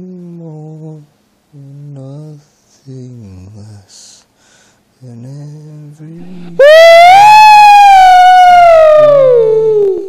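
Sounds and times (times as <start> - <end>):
high wailing vocal note: 6.2 - 10.0.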